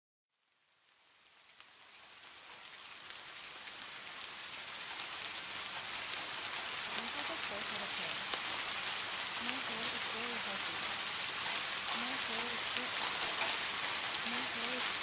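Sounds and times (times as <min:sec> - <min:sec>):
steady rain: 0:00.3 - 0:15.0
sharp raindrop ticks: 0:01.5 - 0:15.0.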